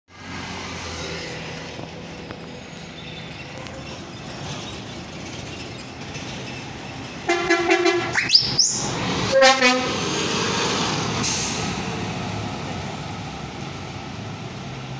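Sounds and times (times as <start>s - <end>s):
bus running noise: 0.1s - 14.9s
bus horn blasts: 7.3s - 8.4s, 9.2s - 10.0s.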